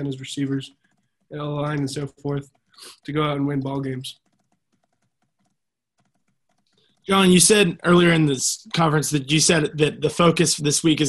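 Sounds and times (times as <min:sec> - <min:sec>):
computer keyboard typing: 0:00.0 - 0:08.2.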